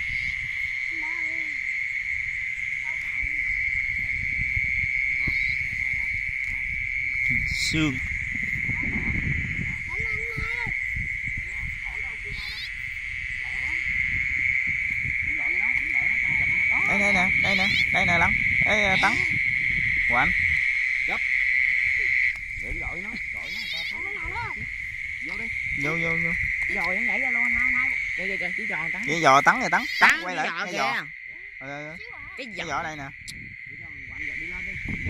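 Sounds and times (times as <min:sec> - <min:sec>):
frog calls: 0:00.0 - 0:35.0
insects droning: 0:00.0 - 0:35.0.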